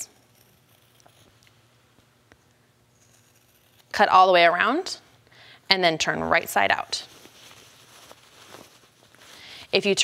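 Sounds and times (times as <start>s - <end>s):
fabric rustling and handling: 6.6s - 10.0s.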